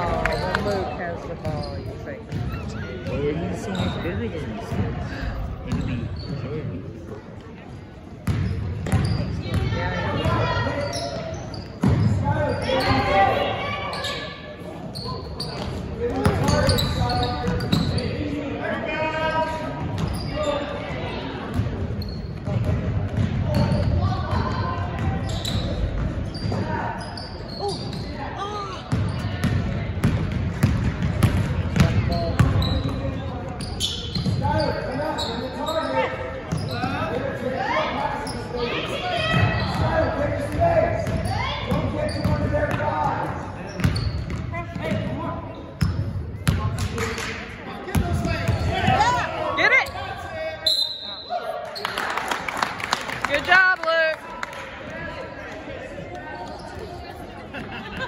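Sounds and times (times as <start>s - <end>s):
voices calling out in gym: 0.0s - 30.0s, 31.5s - 58.0s.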